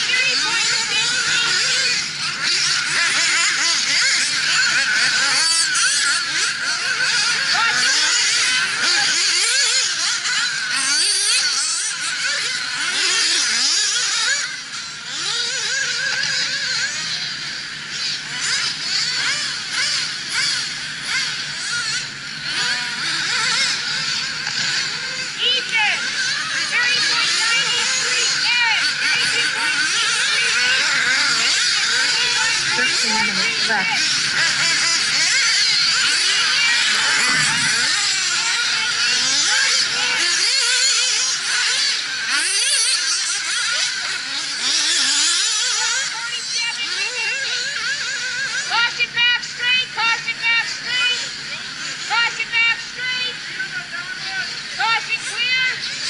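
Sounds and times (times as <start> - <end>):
rc car engines whining: 0.0 - 56.0.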